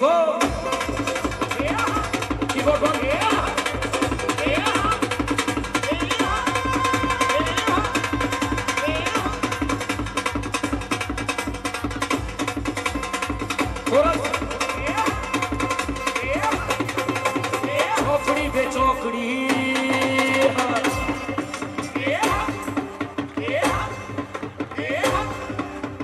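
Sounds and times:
fast drum beat: 0.0 - 26.0.

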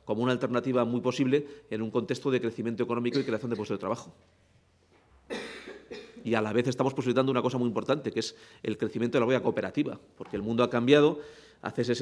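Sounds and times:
short breathy cough: 3.1 - 3.7, 5.3 - 6.2.

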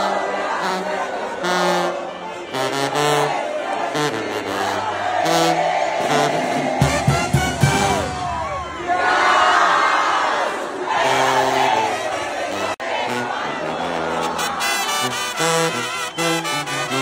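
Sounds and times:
live brass band music: 0.0 - 8.6, 10.9 - 17.0
crowd shouting and cheering: 0.0 - 17.0.

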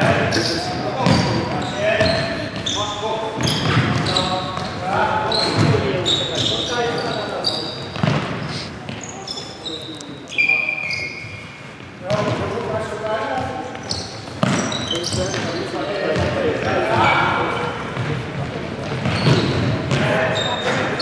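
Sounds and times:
sneakers squeaking on wooden court: 0.0 - 21.0.

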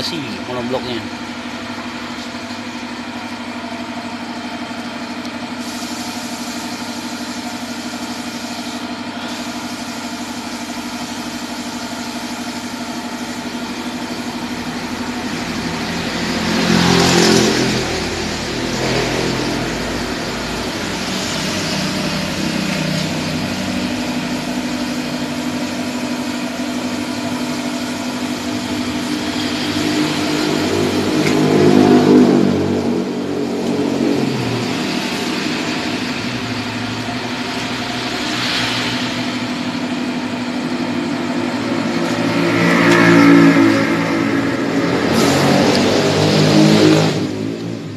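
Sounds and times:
car engine idling with revs: 0.0 - 47.9.

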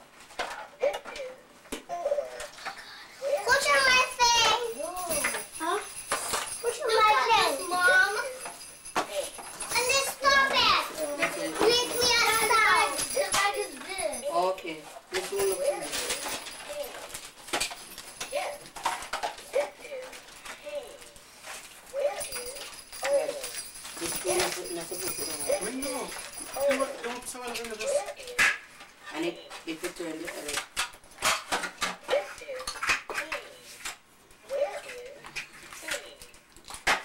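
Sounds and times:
children chattering and calling out: 3.0 - 6.0, 6.6 - 8.6, 9.2 - 14.4, 15.3 - 17.1.

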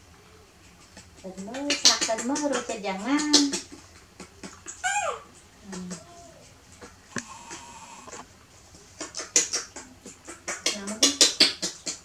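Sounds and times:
macaque squealing: 4.2 - 6.6.

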